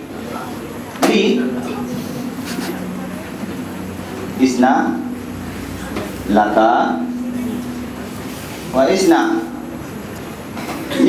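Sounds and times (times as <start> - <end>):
amplified room hum: 0.0 - 11.0.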